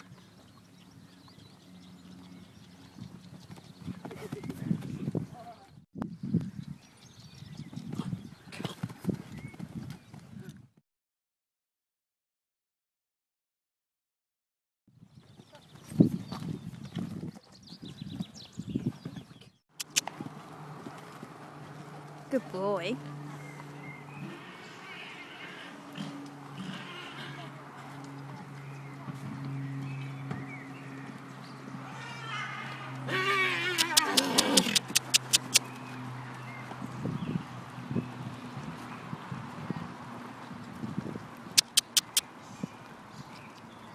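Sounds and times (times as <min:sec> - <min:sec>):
horse hooves thudding: 0:15.2 - 0:22.7, 0:33.6 - 0:42.2
sharp clicks: 0:19.8 - 0:20.1, 0:33.8 - 0:35.8, 0:41.6 - 0:42.2
horse whinnying: 0:24.2 - 0:27.5, 0:31.9 - 0:35.6.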